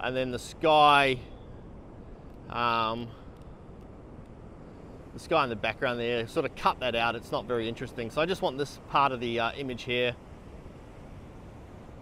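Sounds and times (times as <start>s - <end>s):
distant ocean surf: 0.0s - 12.0s
wind rumble: 0.0s - 12.0s.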